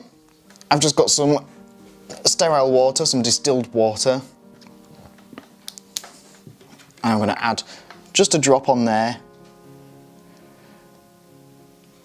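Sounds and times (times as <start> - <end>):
faint background music: 0.0 - 12.0
plastic ampoule clicks: 4.6 - 6.2.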